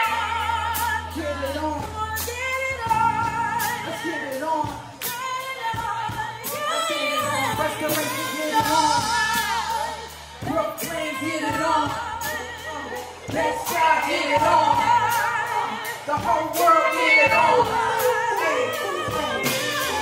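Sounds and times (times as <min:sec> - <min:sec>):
bass notes: 0:00.0 - 0:20.0
women singing: 0:00.0 - 0:20.0
drum strokes: 0:13.2 - 0:20.0.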